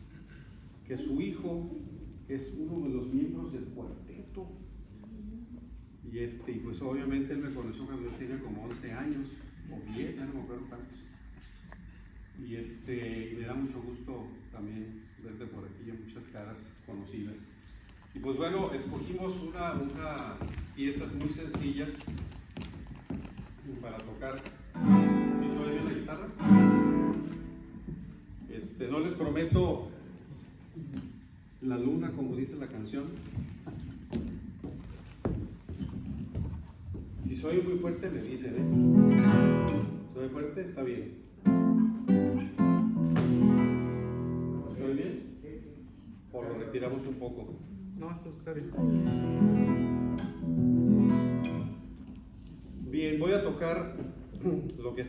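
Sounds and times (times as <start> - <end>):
footsteps on hard stage floor: 17.7 - 28.6, 32.9 - 40.0, 42.1 - 44.4, 48.7 - 55.0
classical guitar chords: 24.7 - 28.2, 38.6 - 40.2, 41.4 - 44.8, 48.8 - 52.0.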